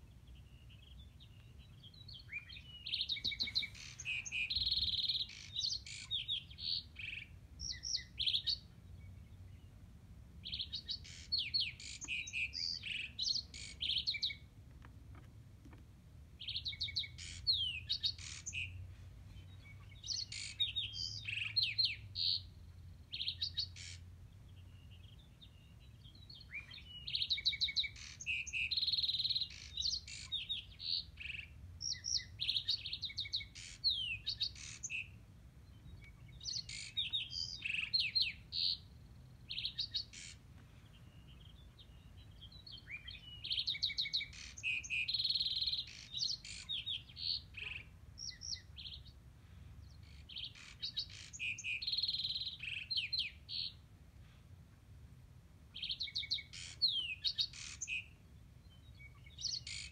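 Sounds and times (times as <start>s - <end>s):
songbirds chirping and trilling: 0.0s - 59.9s.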